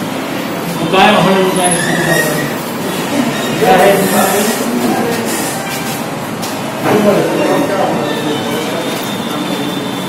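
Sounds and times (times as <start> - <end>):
crowd bustle: 0.0 - 10.0.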